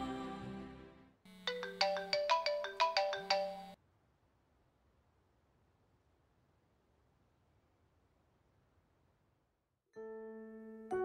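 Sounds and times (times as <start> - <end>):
mobile phone ringtone: 1.3 - 3.8.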